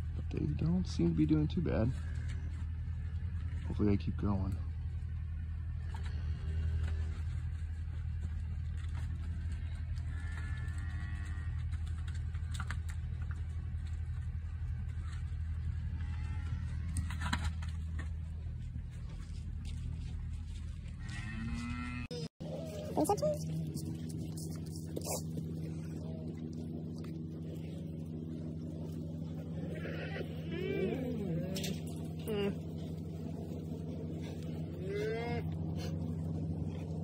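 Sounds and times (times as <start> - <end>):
low machine drone: 0.0 - 37.0
cows mooing: 9.3 - 12.1, 15.7 - 17.4, 21.0 - 23.4, 24.3 - 35.9.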